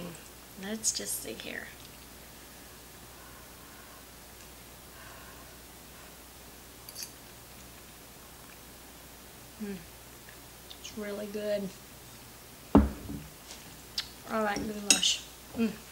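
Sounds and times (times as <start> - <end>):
low steady hum: 0.0 - 15.9.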